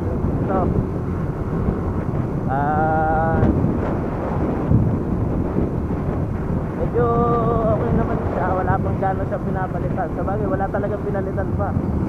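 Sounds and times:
road noise: 0.0s - 12.0s
wind rushing over microphone: 0.0s - 12.0s.

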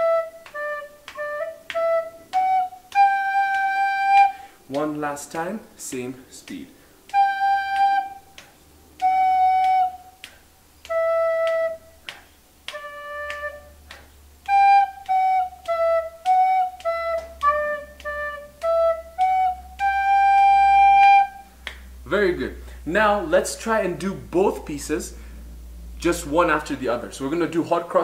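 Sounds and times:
recorder playing a melody: 0.0s - 4.7s, 7.1s - 8.4s, 9.0s - 12.1s, 12.7s - 21.6s.

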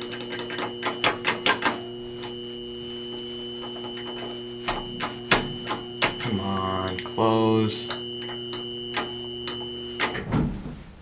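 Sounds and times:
electrical buzz with high tone: 0.0s - 10.3s.

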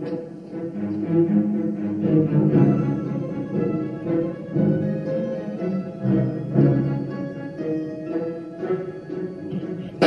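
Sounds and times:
low bowed strings: 0.0s - 10.0s
orchestral film music: 0.0s - 10.0s.

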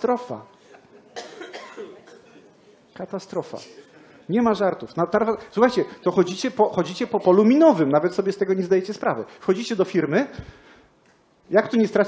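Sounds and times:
person coughing: 1.2s - 2.5s, 3.6s - 4.0s.

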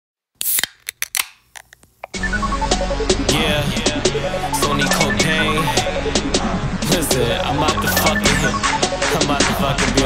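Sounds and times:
sharp clicks and snips: 0.4s - 2.2s.

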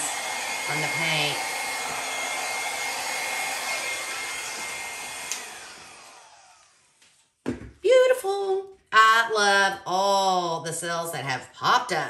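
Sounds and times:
hair dryer whining: 0.0s - 7.2s
hair dryer switch click: 4.5s - 5.6s.

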